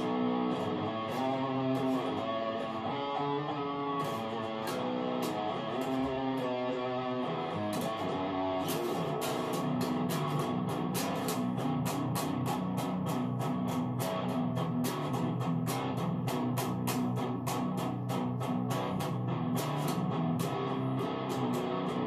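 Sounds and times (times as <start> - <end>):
electric guitar riff: 0.0 - 22.0.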